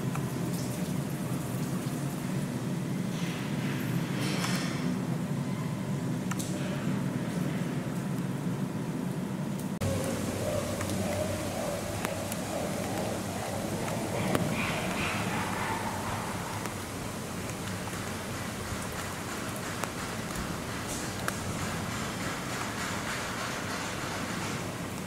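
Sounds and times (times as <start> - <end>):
steady outdoor hiss: 0.0 - 25.0
faint chimpanzee call: 9.8 - 16.7.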